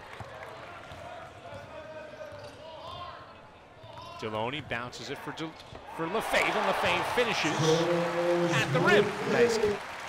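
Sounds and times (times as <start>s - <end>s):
murmur of crowd voices: 6.3s - 9.8s.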